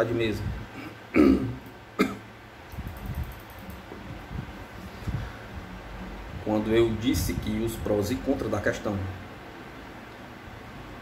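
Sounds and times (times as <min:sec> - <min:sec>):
man clearing his throat: 0:00.8 - 0:02.3.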